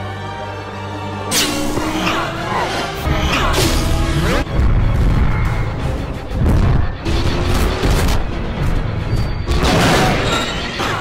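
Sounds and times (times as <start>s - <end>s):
dramatic music: 0.0s - 11.0s.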